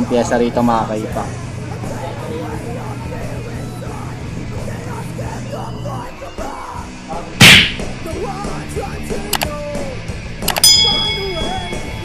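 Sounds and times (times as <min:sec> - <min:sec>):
rock music: 0:01.2 - 0:12.0
mouse clicks: 0:09.3 - 0:09.5
bell ding: 0:10.5 - 0:12.0.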